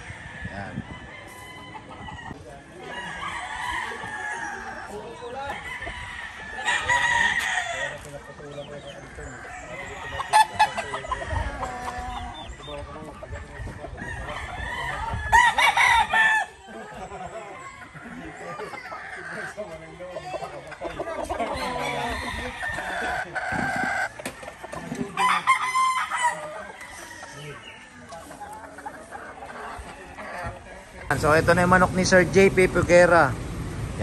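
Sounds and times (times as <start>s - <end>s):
chickens clucking: 0.0s - 34.0s
roosters crowing: 0.0s - 34.0s.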